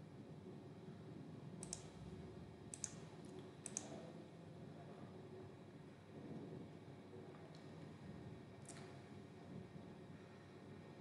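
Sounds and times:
faint low room hum: 0.0 - 11.0
computer mouse clicks: 1.6 - 2.0, 2.7 - 4.0.

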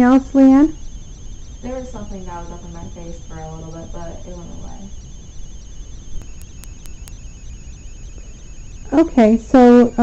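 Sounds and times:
high-pitched whine: 0.0 - 10.0
low hum: 0.0 - 10.0
faint ticks: 6.2 - 7.2.

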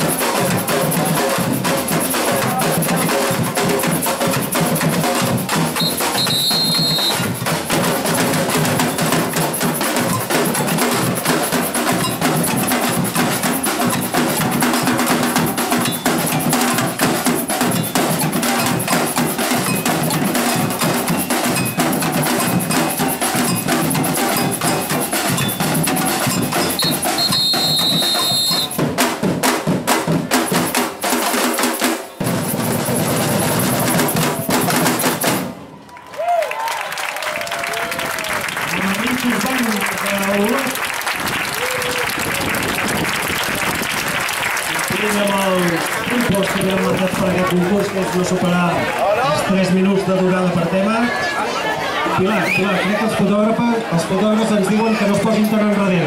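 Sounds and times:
samba drum group: 0.0 - 36.4, 37.2 - 51.2
high whistle blast: 5.8 - 7.3, 26.8 - 28.8.

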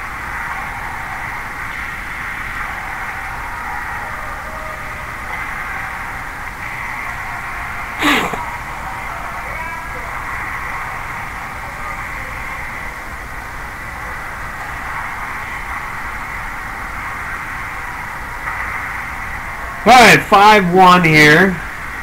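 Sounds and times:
steady background hiss: 0.0 - 22.0
man saying a word: 8.0 - 8.4.

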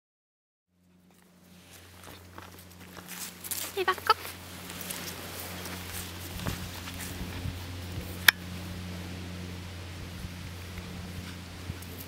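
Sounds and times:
steady low hum: 0.7 - 12.0
footsteps on grass: 1.1 - 8.9.

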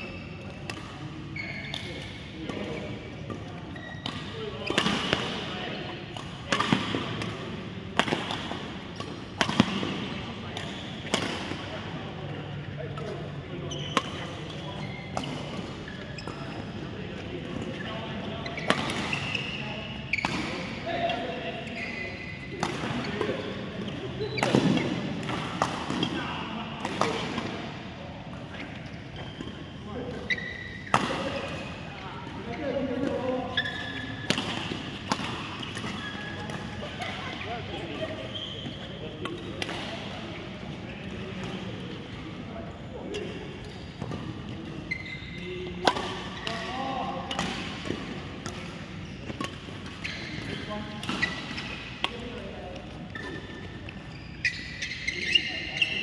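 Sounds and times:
rackets hitting shuttlecock: 0.5 - 21.3, 22.4 - 26.2, 26.8 - 27.6, 32.9 - 38.0, 45.7 - 54.1.

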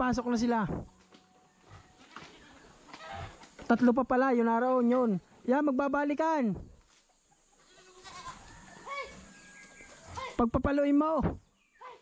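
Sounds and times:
goats bleating: 7.6 - 9.2.

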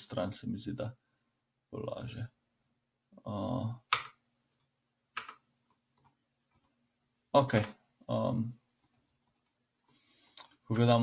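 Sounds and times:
computer mouse clicks: 3.9 - 6.8, 8.8 - 10.6.

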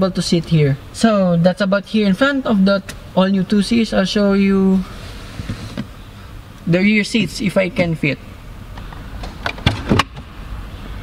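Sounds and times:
glove box latch clicks and knocks: 8.7 - 10.3.

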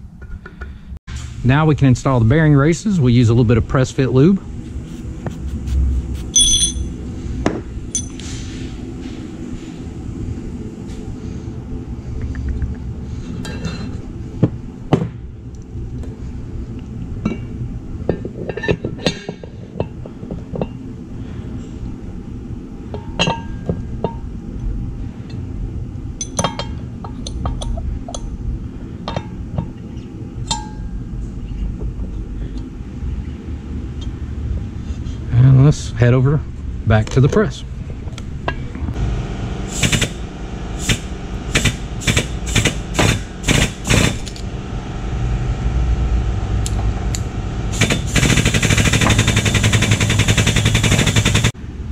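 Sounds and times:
steady low hum: 0.0 - 51.9
small metal parts clinking: 6.3 - 6.9, 7.9 - 8.2.

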